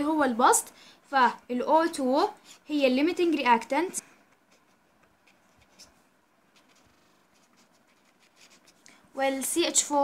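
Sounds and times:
marker scratching on paper: 4.3 - 8.8.

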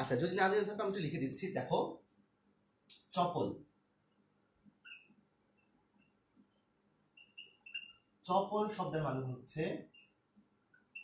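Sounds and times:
faint squeaks from writing: 4.8 - 8.2, 9.8 - 10.2.

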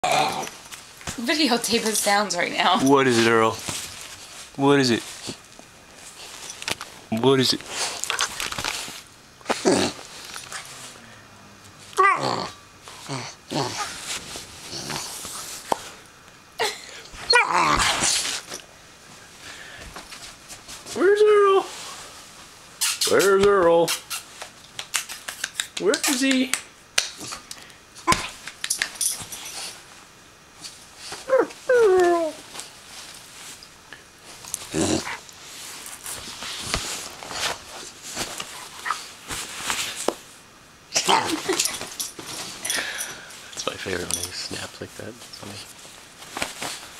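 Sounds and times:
bedding rustling: 0.5 - 11.0, 13.7 - 16.0, 28.3 - 40.4, 41.0 - 46.9
puppy growly calls: 12.0 - 14.0, 17.3 - 18.0, 34.6 - 35.3
puppy yelping: 17.2 - 17.8.

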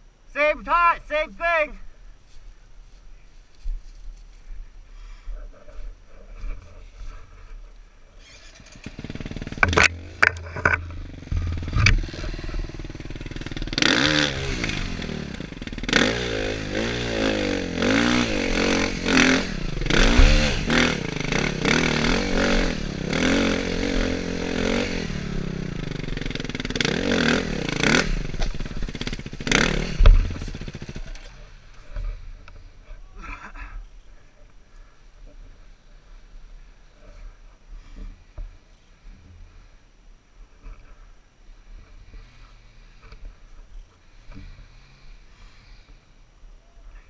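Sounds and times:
dirt bike engine revving: 8.2 - 32.8.

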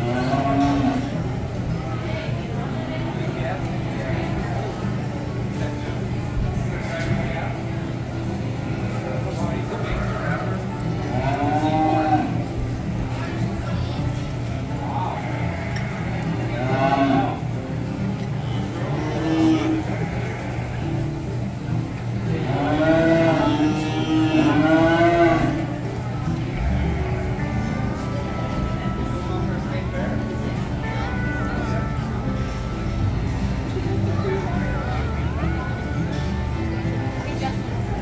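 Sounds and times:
cattle mooing: 0.0 - 1.2, 9.8 - 12.5, 15.1 - 17.5, 18.8 - 20.9, 22.4 - 25.8.

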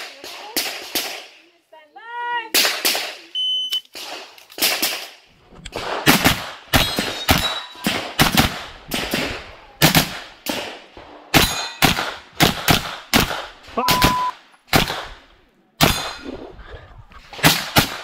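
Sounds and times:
rapid gunshots: 4.0 - 16.4, 17.3 - 18.0
shot timer beep: 13.8 - 14.3.

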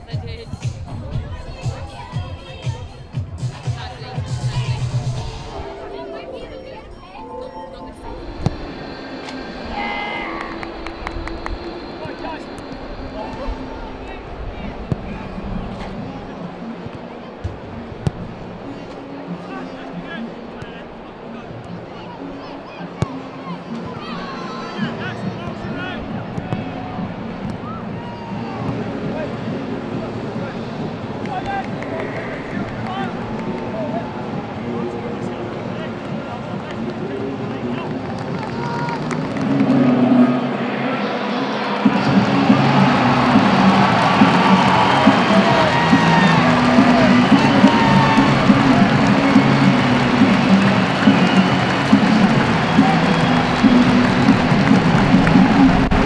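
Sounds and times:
crowd murmuring: 0.0 - 56.0
music over public address: 0.0 - 56.0.

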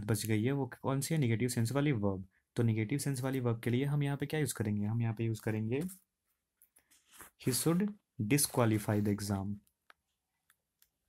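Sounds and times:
person speaking: 0.0 - 6.2, 7.2 - 9.9.

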